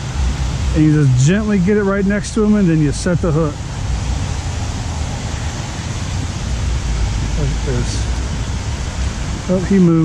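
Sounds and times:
wind on microphone: 0:00.0 - 0:10.0.

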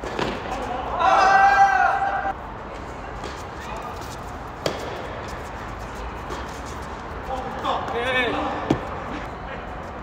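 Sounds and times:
tennis racket hitting ball: 0:04.6 - 0:05.3.

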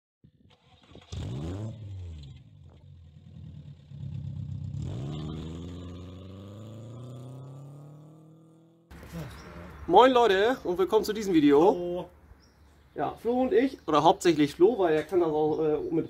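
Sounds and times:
car engine revving: 0:00.9 - 0:09.0.

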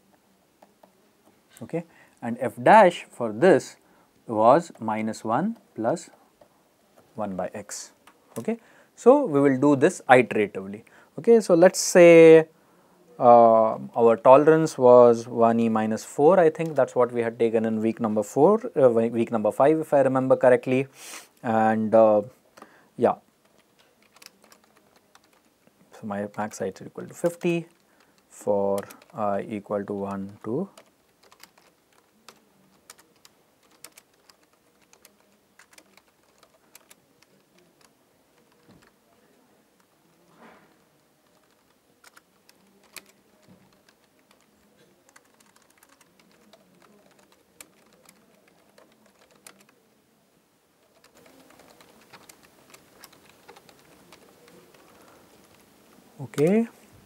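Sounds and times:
faint keyboard typing: 0:00.0 - 0:01.7, 0:04.5 - 0:08.6, 0:15.6 - 0:17.0, 0:22.5 - 0:49.9, 0:50.8 - 0:56.8
keyboard typing clicks: 0:30.8 - 0:37.5.

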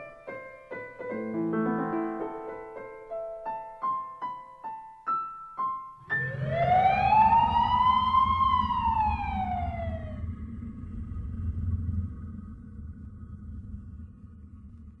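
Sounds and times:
siren-like pitch sweep: 0:06.0 - 0:10.3
low rumble: 0:06.0 - 0:15.0.

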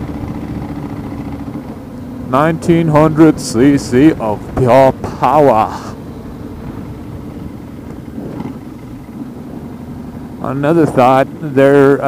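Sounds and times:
motorcycle engine running: 0:00.0 - 0:12.0
road noise: 0:00.0 - 0:12.0.

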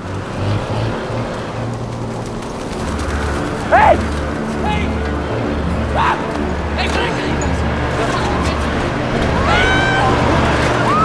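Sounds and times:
low sustained music score: 0:00.0 - 0:11.0
person shouting: 0:03.7 - 0:04.0.

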